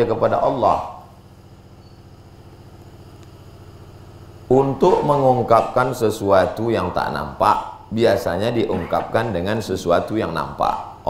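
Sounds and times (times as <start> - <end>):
small motor humming: 1.1 - 4.3.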